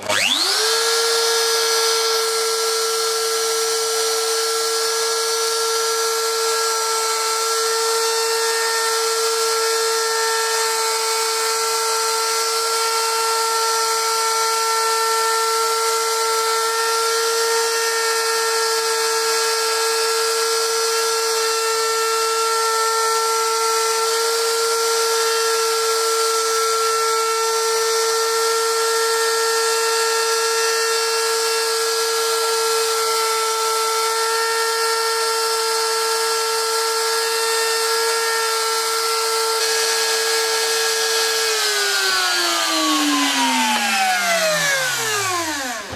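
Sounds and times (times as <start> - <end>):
router whining carving wood: 0.0 - 45.9.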